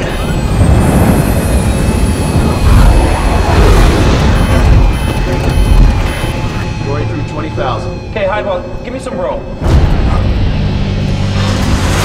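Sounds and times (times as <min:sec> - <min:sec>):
jet engine flying overhead: 0:00.0 - 0:05.5.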